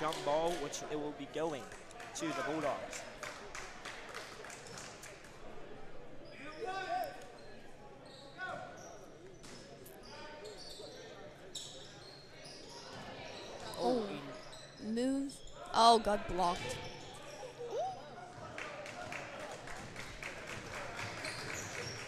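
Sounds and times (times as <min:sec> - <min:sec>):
voices echoing: 0:09.9 - 0:19.2.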